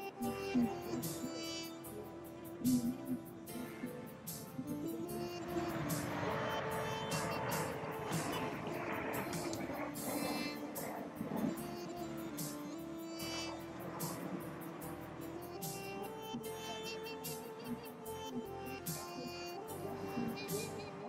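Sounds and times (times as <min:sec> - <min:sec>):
music: 0:00.0 - 0:21.0
jets passing overhead: 0:00.6 - 0:21.0.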